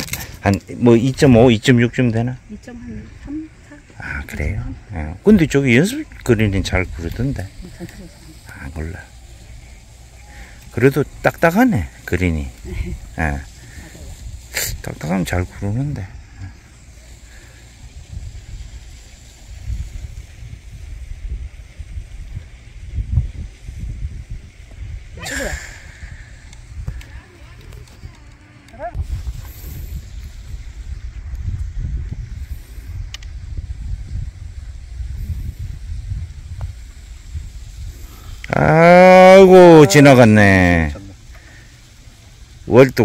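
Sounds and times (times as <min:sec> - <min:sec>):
wind buffeting microphone: 0:00.0 - 0:38.8.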